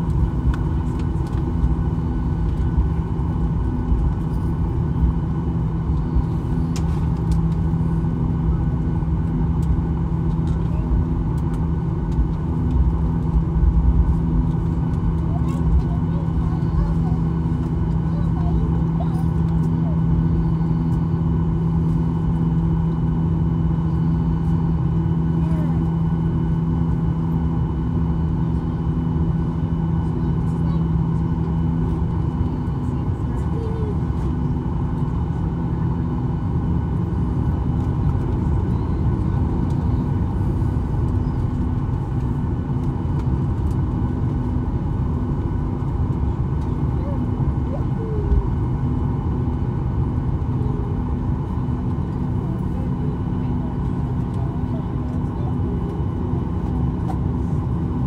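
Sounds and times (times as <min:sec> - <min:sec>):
jet engines idling: 0:00.0 - 0:58.0.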